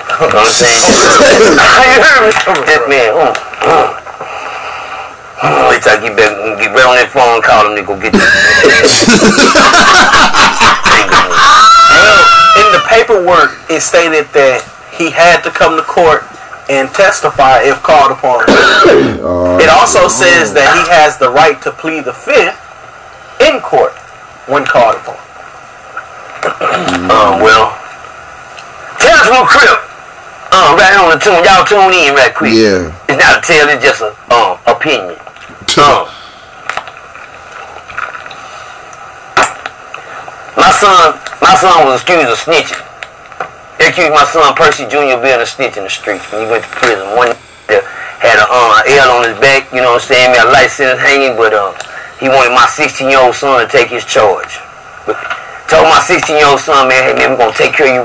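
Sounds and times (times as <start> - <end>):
high-pitched squealing laugh: 0.6 - 1.8, 8.2 - 12.9
men laughing: 0.6 - 1.9, 8.1 - 12.9
low background hiss: 4.8 - 58.0.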